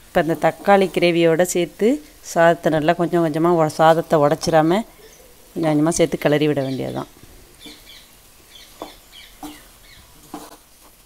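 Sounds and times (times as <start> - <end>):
wooden spatula stirring rice in pan: 0.0 - 2.2, 7.5 - 7.9, 8.6 - 11.0.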